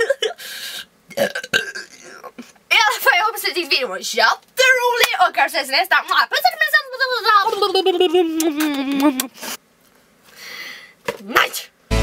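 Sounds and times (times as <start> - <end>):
woman burp-like sound: 1.1 - 2.5.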